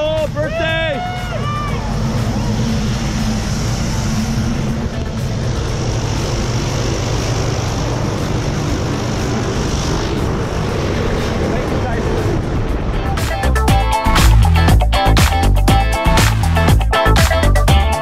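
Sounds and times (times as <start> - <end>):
propeller airplane engine droning: 0.0 - 18.0.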